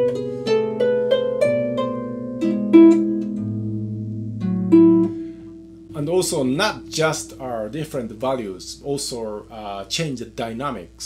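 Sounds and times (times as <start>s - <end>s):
harp plucked notes: 0.0s - 9.8s.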